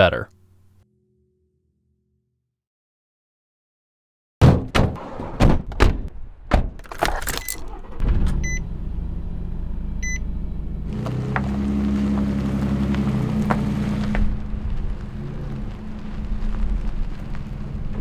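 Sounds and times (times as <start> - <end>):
van engine running: 7.4 - 18.0
short electronic beeps: 8.4 - 8.7, 10.0 - 10.3.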